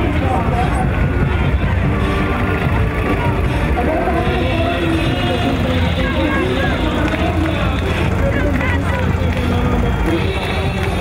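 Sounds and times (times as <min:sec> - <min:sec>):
crowd chatter: 0:00.0 - 0:11.0
tractor engine running: 0:00.0 - 0:11.0.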